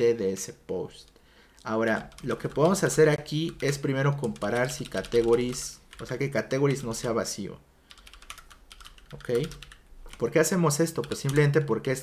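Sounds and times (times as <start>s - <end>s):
typing on computer keyboard: 1.9s - 7.2s, 7.9s - 11.8s.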